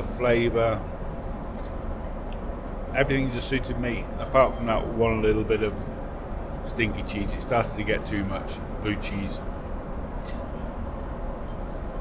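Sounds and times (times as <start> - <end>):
airliner cabin engine drone: 0.0 - 12.0.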